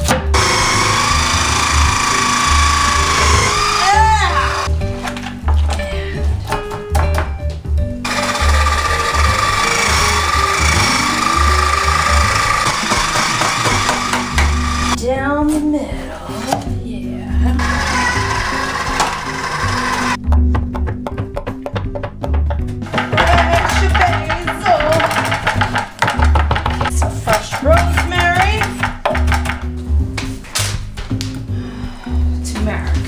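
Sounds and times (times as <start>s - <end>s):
electric juicer motor whirring: 0.4s - 4.7s, 8.0s - 15.0s, 17.6s - 20.2s.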